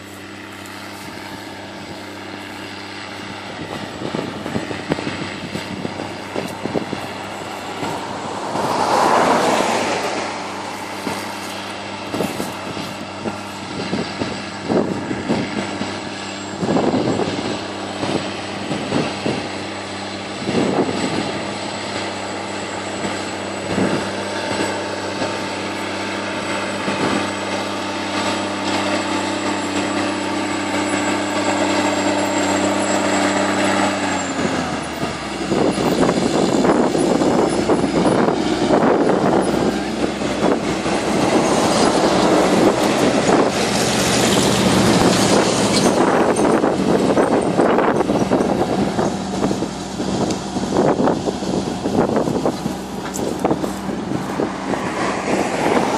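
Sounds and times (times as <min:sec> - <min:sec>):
harrow discs rattling in soil: 0:00.0 - 0:55.9
tractor diesel engine running: 0:00.0 - 0:55.9.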